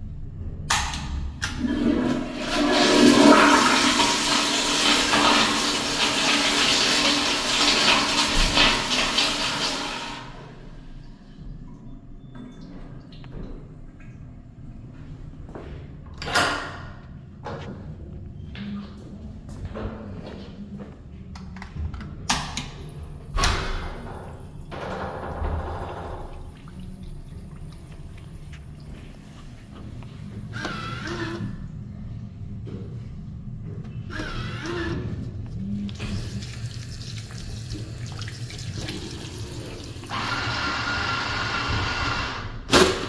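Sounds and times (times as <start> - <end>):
soap dispenser whirring: 30.5 - 31.5, 38.7 - 42.5.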